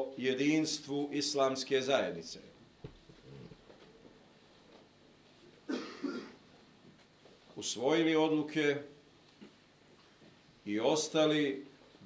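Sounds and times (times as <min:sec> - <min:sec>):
person coughing: 0:05.7 - 0:06.4.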